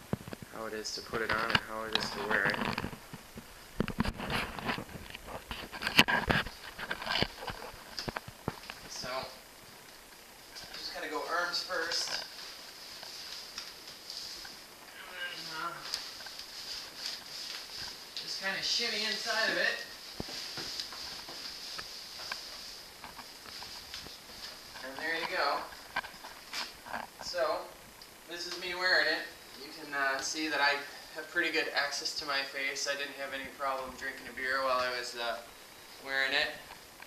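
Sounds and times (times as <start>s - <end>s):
cardboard costume rustling: 10.4s - 27.2s.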